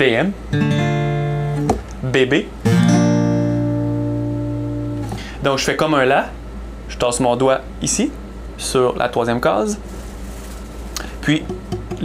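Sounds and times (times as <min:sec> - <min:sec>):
acoustic guitar chord ringing: 0:00.5 - 0:01.8, 0:02.6 - 0:05.4.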